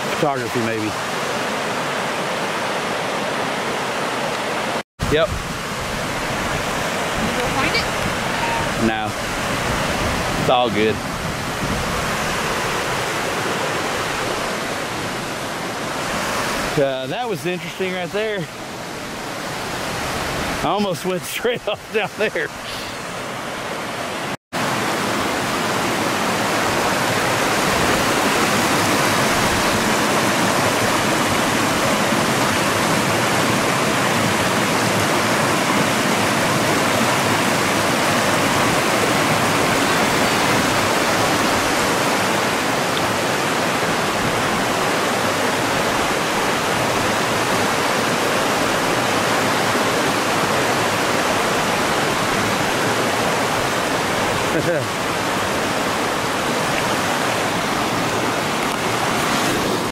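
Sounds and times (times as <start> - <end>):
water rushing over rocks: 0.0 - 59.9.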